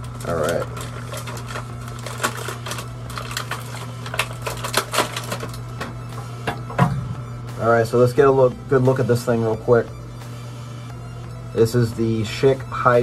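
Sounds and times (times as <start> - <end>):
plastic packaging clicking and crackling: 0.0 - 6.7
low hum: 0.0 - 13.0.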